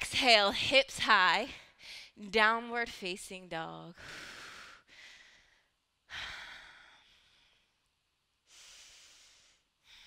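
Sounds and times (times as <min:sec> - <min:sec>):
woman breathing: 0:01.5 - 0:02.2, 0:03.9 - 0:10.0.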